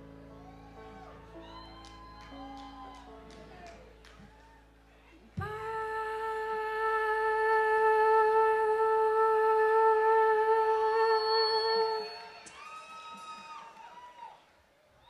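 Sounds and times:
woman singing a long note: 5.4 - 12.4.

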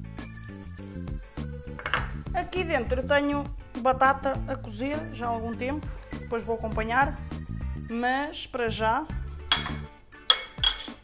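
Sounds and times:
background music with light beat: 0.0 - 11.0
spoon clinking on ceramic plate: 9.3 - 11.0.

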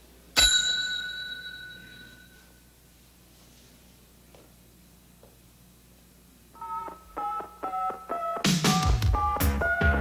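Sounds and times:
service bell ringing: 0.4 - 2.5.

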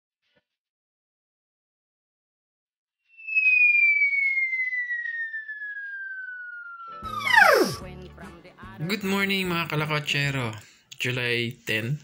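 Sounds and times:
descending whistle: 3.0 - 7.8
music: 6.9 - 10.2.

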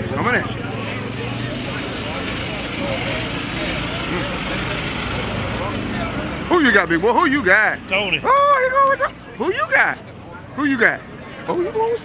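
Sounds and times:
race car engine idling: 0.0 - 9.3
faint crowd voices: 0.0 - 12.0.

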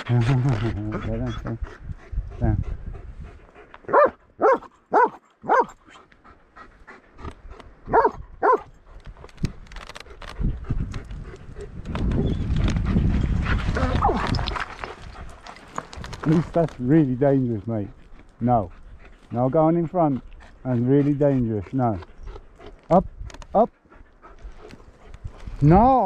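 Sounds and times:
dog barking: 3.9 - 5.8, 7.9 - 8.7.

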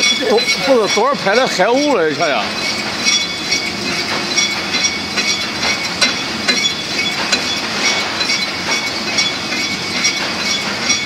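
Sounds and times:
machinery clattering: 0.0 - 11.0.

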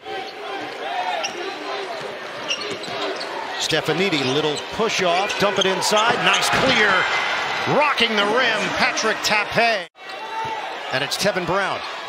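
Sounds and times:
murmur of arena crowd: 0.0 - 12.0.

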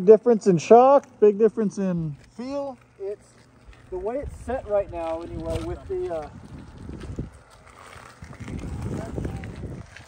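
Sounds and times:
wind rumble: 3.7 - 10.0.

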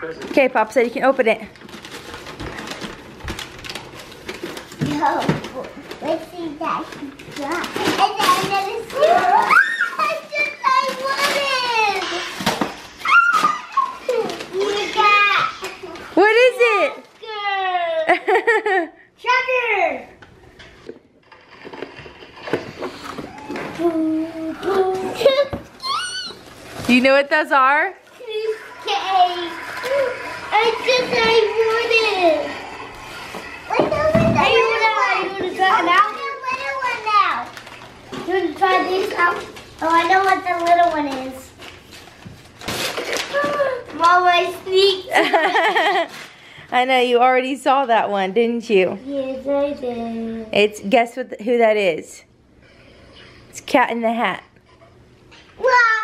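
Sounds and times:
wrapping paper crackling and tearing: 1.5 - 16.2, 21.2 - 27.2, 28.0 - 33.3, 34.5 - 45.0, 45.6 - 47.0
children's excited high-pitched voices: 7.4 - 12.3, 13.0 - 16.0, 23.3 - 26.4, 28.2 - 32.7, 33.6 - 37.5
young children talking: 33.7 - 37.4.

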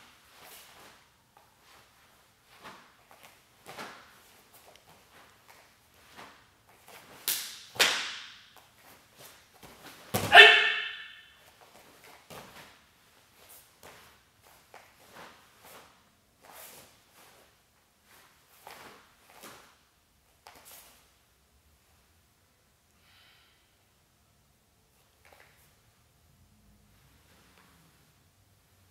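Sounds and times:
uniform snapping and swishing: 2.5 - 11.0
person shouting: 10.2 - 11.1.

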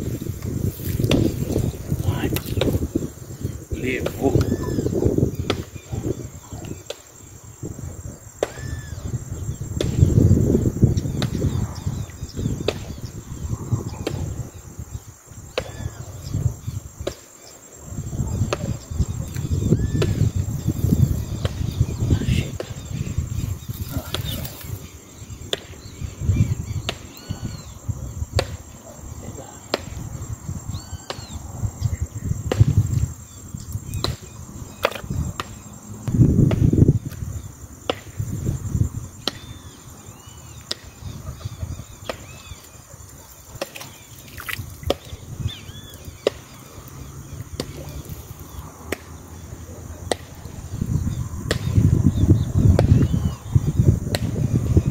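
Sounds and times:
high insect buzz: 0.0 - 49.7
wind rumble on microphone: 0.0 - 54.9.

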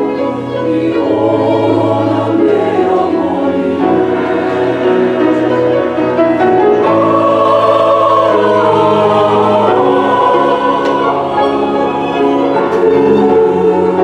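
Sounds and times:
church choir singing: 0.0 - 14.0.

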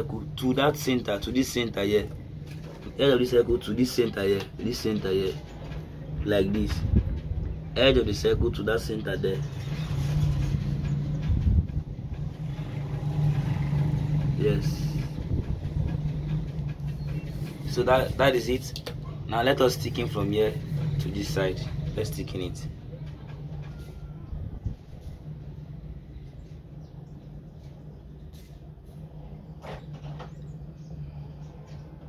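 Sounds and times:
low mechanical hum: 0.0 - 32.0.

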